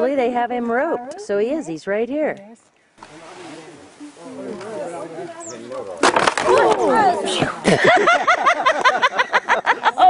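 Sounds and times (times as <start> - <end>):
crash and clatter of knocks: 6.0 - 6.7
people laughing: 6.5 - 10.0.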